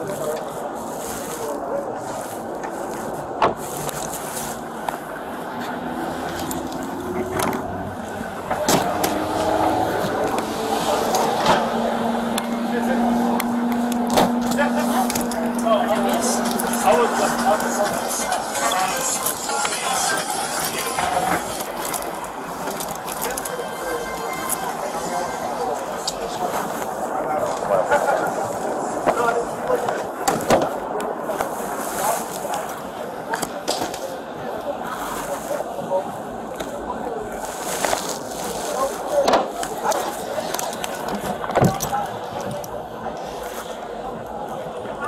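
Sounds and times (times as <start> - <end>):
steady background noise: 0.0 - 45.0.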